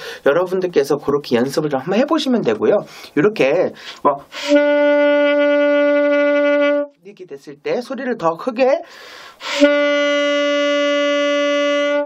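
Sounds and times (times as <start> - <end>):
saxophone long tone: 4.3 - 7.0, 9.4 - 12.0
rush of breath: 8.9 - 9.6.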